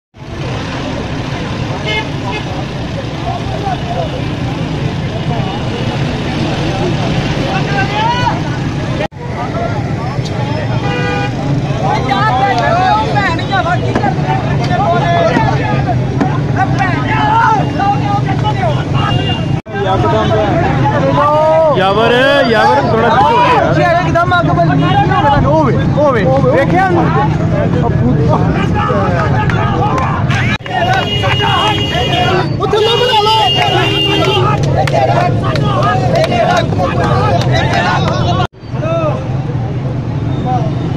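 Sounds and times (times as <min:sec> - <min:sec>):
vehicle engines rumbling: 0:00.1 - 0:40.9
many voices talking: 0:00.2 - 0:40.9
car horn tooting: 0:10.6 - 0:12.3, 0:17.0 - 0:20.5, 0:30.3 - 0:34.6.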